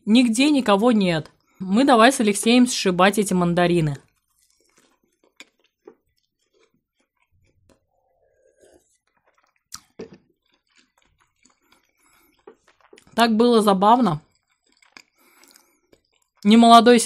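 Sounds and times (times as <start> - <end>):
chewing: 4.0 - 13.2, 14.1 - 16.6
mouth clicks: 4.5 - 13.2
sip from a cup: 7.7 - 10.3.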